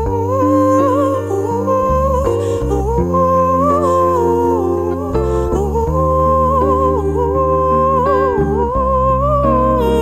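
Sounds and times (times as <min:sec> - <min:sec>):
woman singing wordless melody: 0:00.0 - 0:10.0.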